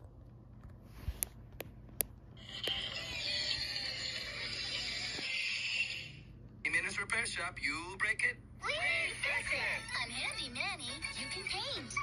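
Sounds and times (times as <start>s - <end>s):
music from television speaker: 2.4s - 6.2s, 10.9s - 12.0s.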